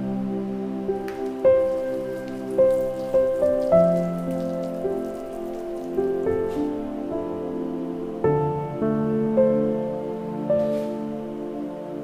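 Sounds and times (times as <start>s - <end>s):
gentle instrumental music: 0.0s - 12.0s
soil granules pattering into pot: 0.9s - 7.0s.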